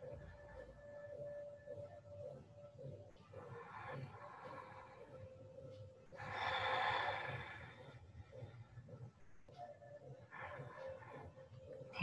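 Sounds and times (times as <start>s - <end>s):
soft breathing: 2.8s - 12.0s.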